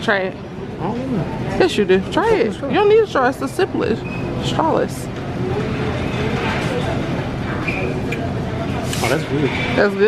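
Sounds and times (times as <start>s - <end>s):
shop ambience: 0.0s - 10.0s
distant voices talking: 0.6s - 10.0s.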